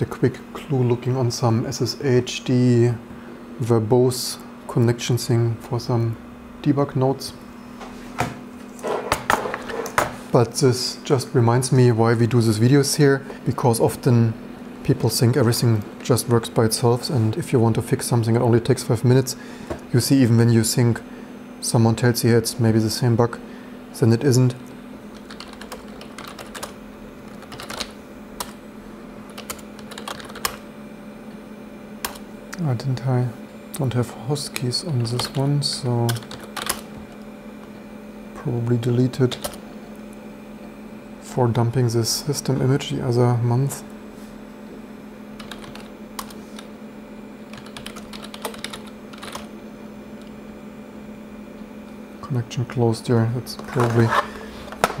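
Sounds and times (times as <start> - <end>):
steady low hum: 0.0 - 55.0
computer keyboard typing: 25.2 - 28.6, 29.3 - 30.6, 36.1 - 37.0, 39.3 - 39.6, 45.4 - 46.7, 47.5 - 49.5.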